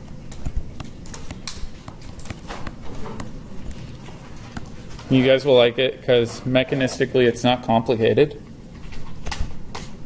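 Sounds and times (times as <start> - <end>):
low room noise: 0.0 - 10.0
stylus tapping on tablet screen: 0.3 - 4.8.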